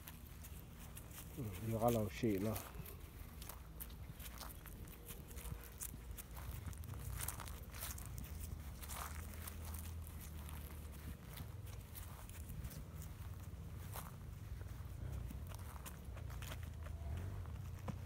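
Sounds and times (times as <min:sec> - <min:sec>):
footsteps on dry grass: 0:00.0 - 0:18.0
low steady rumble: 0:00.0 - 0:18.0.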